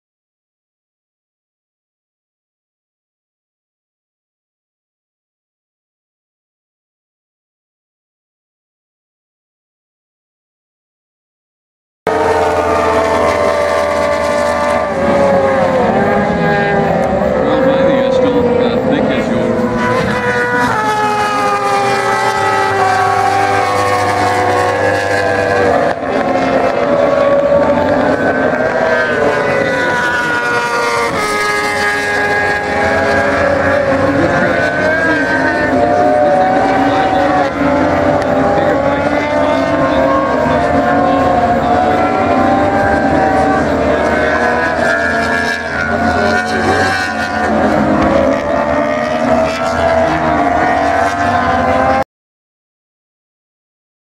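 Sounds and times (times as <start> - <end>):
racing motorcycle engines revving: 12.1 - 52.1.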